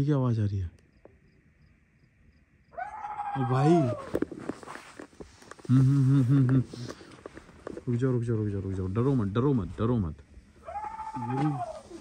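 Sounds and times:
faint insect hum: 0:00.0 - 0:12.0
man's low voice: 0:05.6 - 0:06.9.

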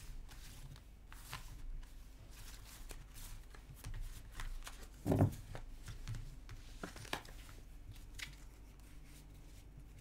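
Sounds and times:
cards being shuffled: 0:00.2 - 0:09.9.

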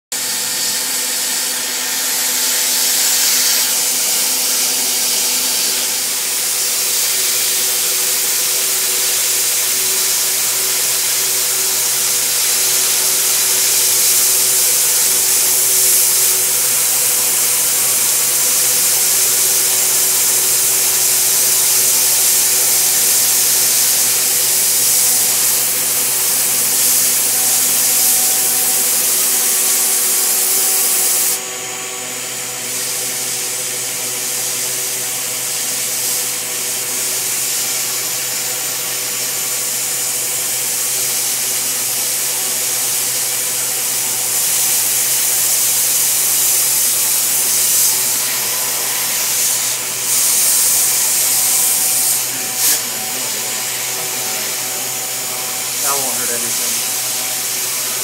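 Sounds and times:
cutter bit cutting hiss: 0:00.2 - 0:58.0.

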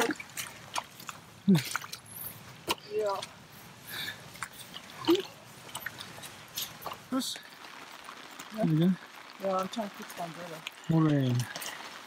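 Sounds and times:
boots squelching in wet mud: 0:00.0 - 0:08.5.

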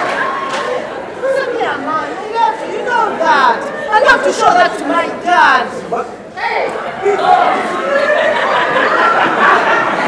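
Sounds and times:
actors talking: 0:00.0 - 0:10.0.

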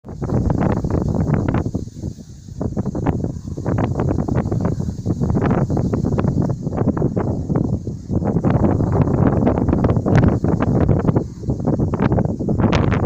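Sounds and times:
wind buffeting microphone: 0:00.0 - 0:13.0
rustle of tall grass: 0:00.1 - 0:13.0.

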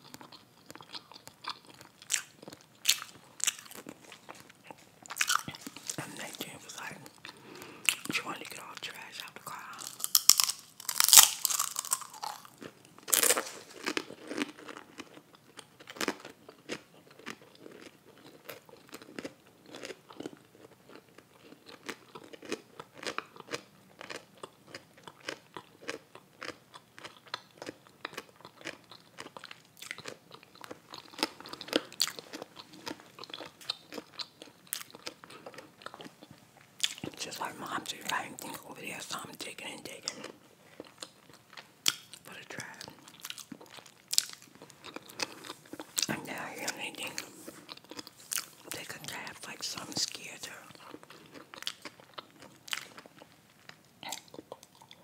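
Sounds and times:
crunchy bites: 0:00.0 - 0:04.4, 0:05.1 - 0:07.0, 0:09.5 - 0:36.2, 0:36.8 - 0:55.0
chewing with small crunches: 0:00.0 - 0:55.0
wet mouth clicks: 0:54.0 - 0:55.0.

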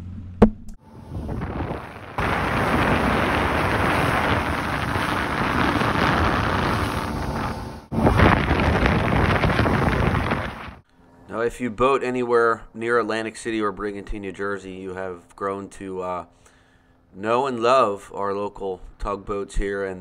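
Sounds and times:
water noise: 0:00.1 - 0:10.8
wind buffeting microphone: 0:00.8 - 0:10.8.

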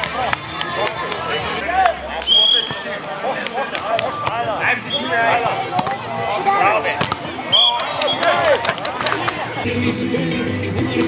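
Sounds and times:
players calling and shouting: 0:00.0 - 0:11.0
volleyball being hit: 0:07.0 - 0:09.0.

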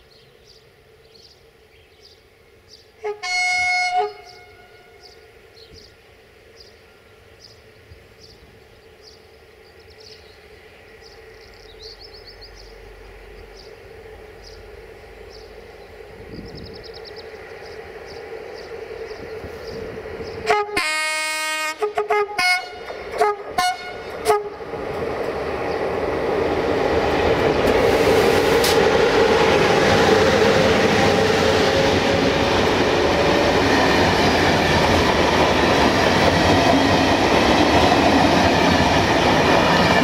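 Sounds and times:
train rumbling: 0:00.0 - 0:40.0
electric locomotive horn blast: 0:03.0 - 0:05.2, 0:20.4 - 0:24.7.

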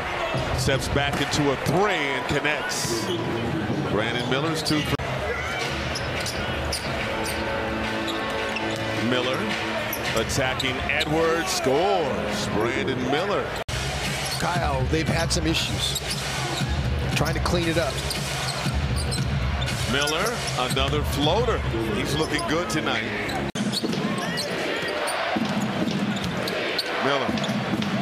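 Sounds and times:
arena noise: 0:00.0 - 0:28.0
crowd noise: 0:00.0 - 0:28.0.

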